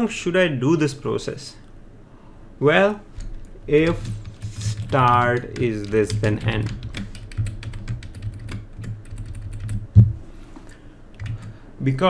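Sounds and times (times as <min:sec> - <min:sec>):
typing on computer keyboard: 0:03.2 - 0:09.9, 0:11.2 - 0:11.6
loud thump: 0:10.0 - 0:10.2.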